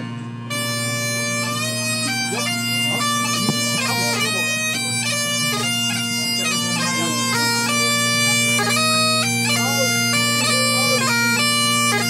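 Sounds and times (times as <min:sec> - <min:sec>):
bagpipe chanter melody: 0:00.0 - 0:12.0
bagpipe drone: 0:00.0 - 0:12.0.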